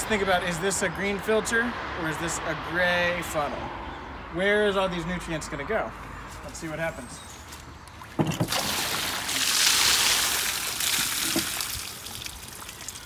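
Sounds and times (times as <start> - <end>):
water splashing on shed roof: 8.1 - 13.0.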